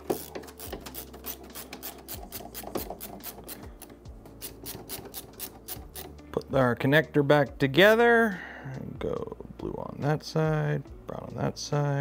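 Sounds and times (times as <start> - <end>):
screwdriver clicking: 0.0 - 6.2.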